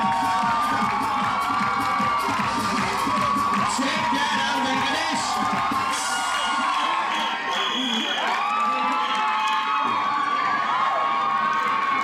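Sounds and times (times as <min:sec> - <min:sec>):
crowd cheering and screaming: 0:00.0 - 0:12.0.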